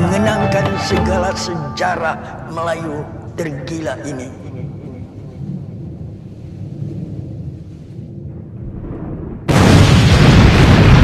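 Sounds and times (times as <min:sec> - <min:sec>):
low rolling rumble: 0:02.6 - 0:11.0.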